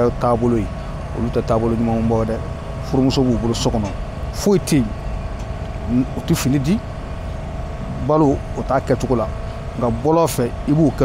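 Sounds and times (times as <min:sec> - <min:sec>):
man speaking: 0:00.0 - 0:04.9, 0:05.9 - 0:06.8, 0:07.9 - 0:11.0
low rumble of street traffic: 0:00.0 - 0:11.0.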